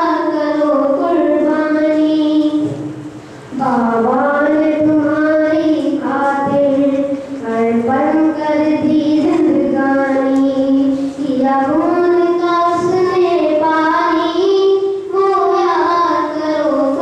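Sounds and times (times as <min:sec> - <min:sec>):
boy singing into microphone: 0:00.0 - 0:17.0.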